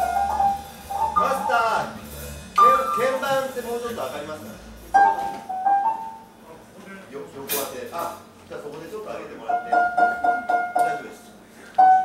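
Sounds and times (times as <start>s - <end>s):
amplified instrument single notes: 0.0s - 1.9s, 2.6s - 3.3s.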